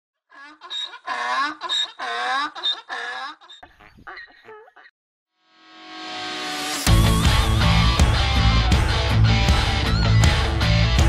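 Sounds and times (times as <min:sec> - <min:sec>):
donkey braying: 0:00.3 - 0:04.9.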